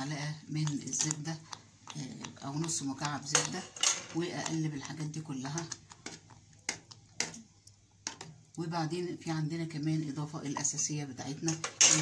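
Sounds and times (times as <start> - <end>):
metal spoon stirring liquid: 0.0 - 8.6, 10.6 - 12.0.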